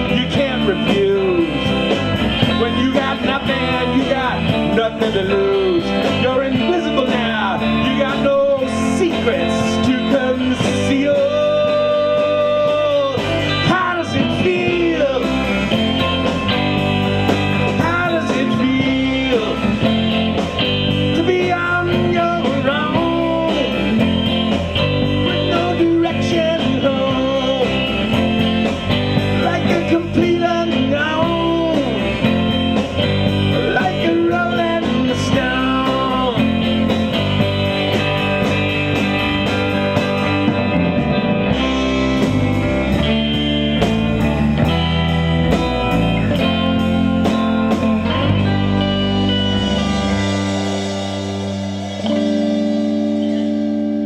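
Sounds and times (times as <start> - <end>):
bass guitar: 0.0 - 54.0
drums with cymbal beat: 0.0 - 54.0
electric guitars: 0.0 - 54.0
lead guitar bent sliding notes: 0.0 - 54.0.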